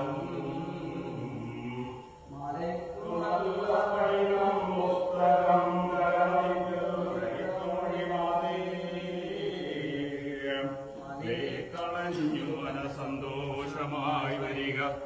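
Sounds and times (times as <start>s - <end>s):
group chanting in unison: 0.0s - 15.0s.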